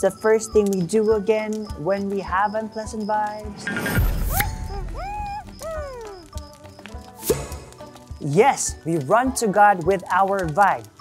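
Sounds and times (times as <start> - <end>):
squeaky cartoon voice calls: 4.3 - 6.3.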